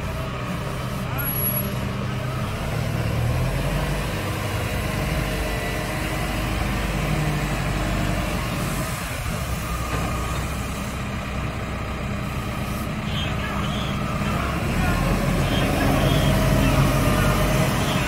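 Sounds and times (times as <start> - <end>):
engine running low hum: 0.0 - 18.0.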